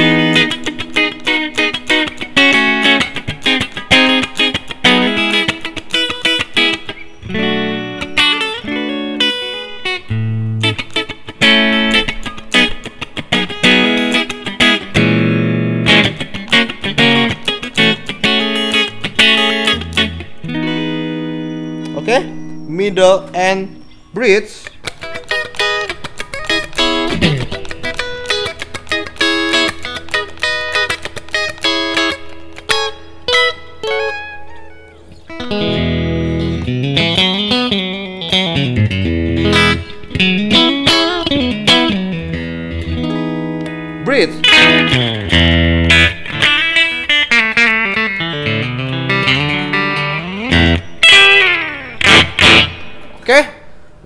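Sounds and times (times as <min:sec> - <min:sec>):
clean electric guitar playing: 0:00.0 - 0:54.0.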